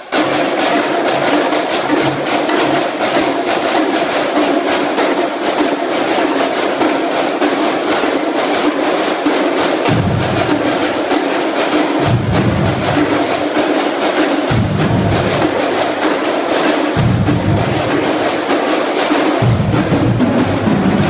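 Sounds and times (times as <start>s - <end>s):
snare drums playing: 0.0s - 21.0s
bass drums: 9.9s - 10.8s, 12.0s - 13.2s, 14.5s - 15.6s, 17.0s - 18.0s, 19.4s - 21.0s.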